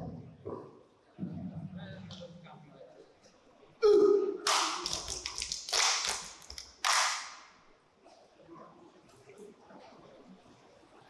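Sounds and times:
rapid hand claps: 4.4s - 7.5s.

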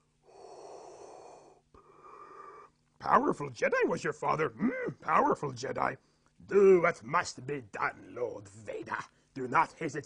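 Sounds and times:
man imitating respirator breathing: 0.0s - 2.8s.

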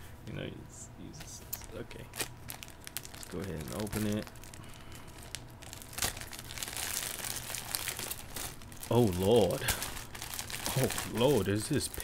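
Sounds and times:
wrapping crinkling and tearing: 1.5s - 12.0s.

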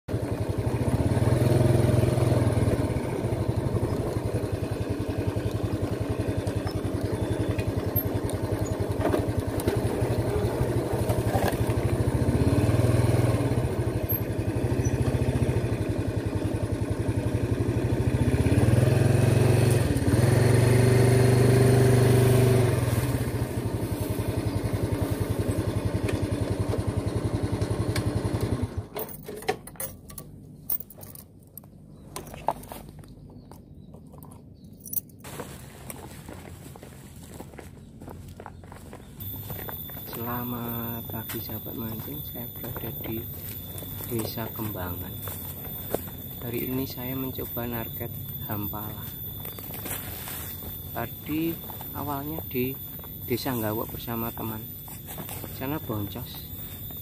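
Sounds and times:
motor scooter engine revving: 0.1s - 29.0s, 39.1s - 57.0s.

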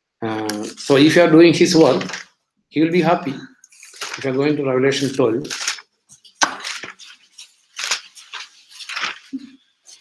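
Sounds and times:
thin paper pages rustling: 1.7s - 2.3s, 3.7s - 10.0s.

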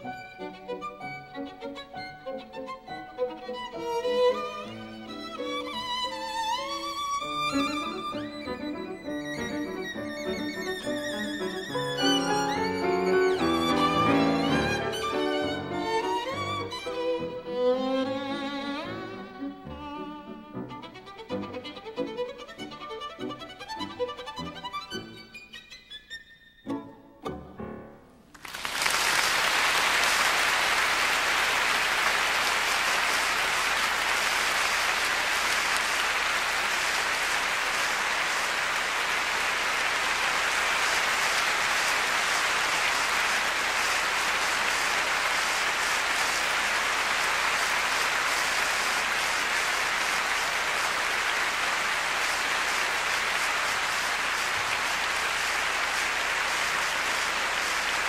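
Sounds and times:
audience applauding: 4.0s - 17.8s, 28.3s - 58.0s.

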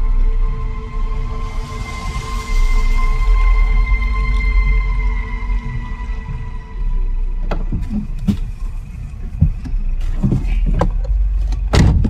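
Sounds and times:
low car rumble: 0.0s - 12.0s
car door opening: 7.3s - 12.0s
knocks and thumps: 7.4s - 12.0s.

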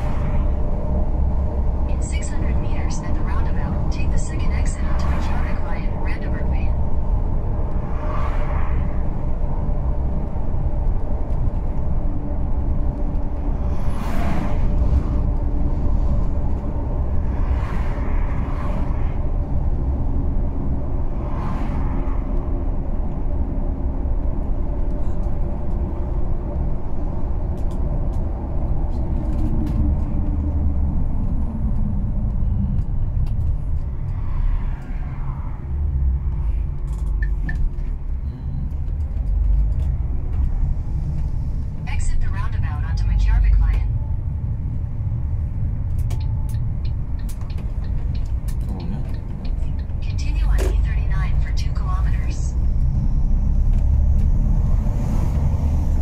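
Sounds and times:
engine and road rumble: 0.0s - 56.0s.

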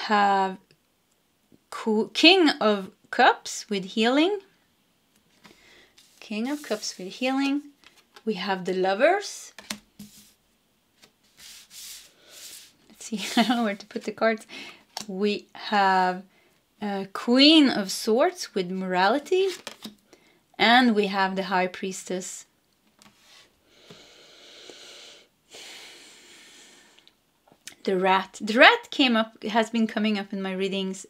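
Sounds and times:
cards sliding on wood: 5.3s - 7.0s, 9.6s - 10.4s, 11.0s - 12.9s, 23.0s - 24.0s
person breathing: 5.4s - 6.2s, 11.4s - 12.8s, 14.5s - 14.9s, 20.1s - 20.5s, 23.2s - 27.1s.

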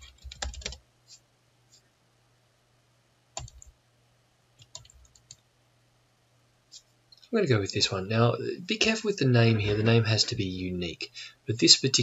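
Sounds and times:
computer keyboard clicking: 0.0s - 0.8s, 3.4s - 3.7s, 4.6s - 5.4s.

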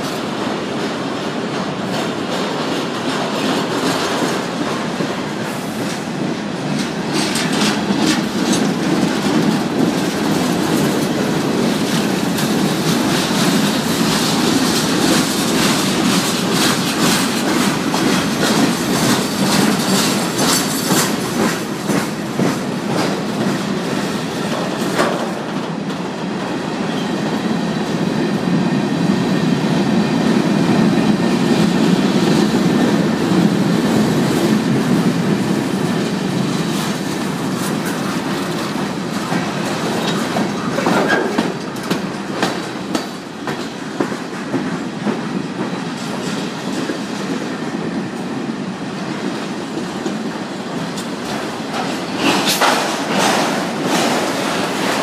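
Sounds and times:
clickety-clack over rail joints: 0.0s - 55.0s
rumble of train wheels on rail: 0.0s - 55.0s.

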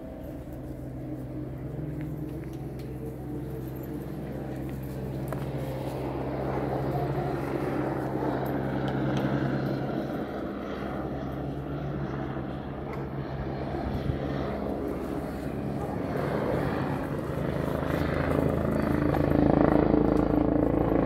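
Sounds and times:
low engine drone: 0.0s - 21.0s.

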